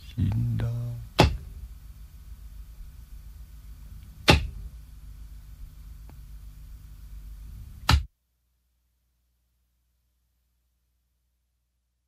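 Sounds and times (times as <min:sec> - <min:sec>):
low steady hum: 0:00.0 - 0:12.0
loud sharp knocks: 0:01.2 - 0:01.5, 0:04.2 - 0:04.6, 0:07.8 - 0:08.1.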